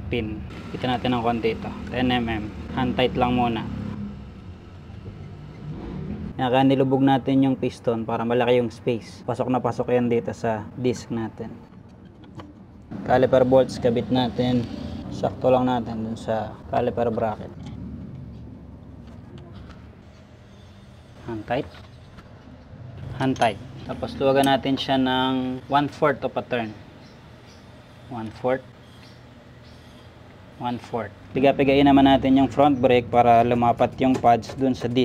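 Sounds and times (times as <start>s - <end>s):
low steady background rumble: 0.0s - 20.5s.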